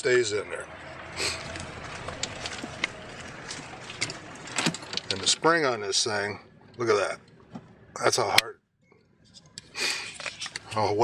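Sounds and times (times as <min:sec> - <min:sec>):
golf cart rolling: 0:00.0 - 0:08.3.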